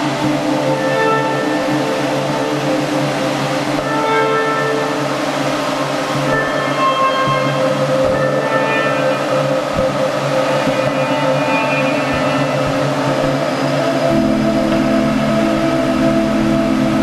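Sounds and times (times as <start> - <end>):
music of long held notes: 0.0 - 17.0
low rumble: 12.1 - 17.0.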